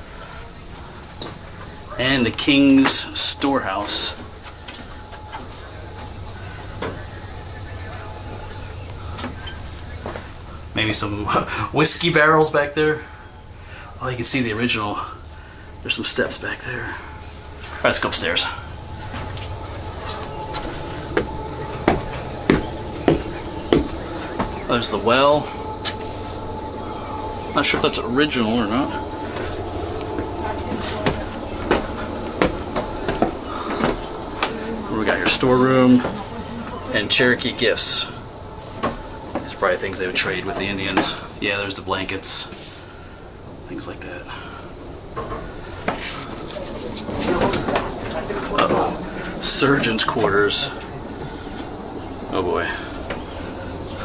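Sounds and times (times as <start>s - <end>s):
distant voices: 0.0s - 54.0s
low background rumble: 0.0s - 54.0s
footsteps on wooden floor: 18.4s - 26.5s, 29.2s - 36.4s.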